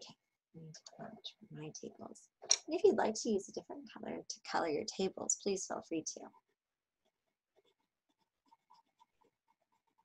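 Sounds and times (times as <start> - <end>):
pencil scratching on paper: 6.3 - 10.0.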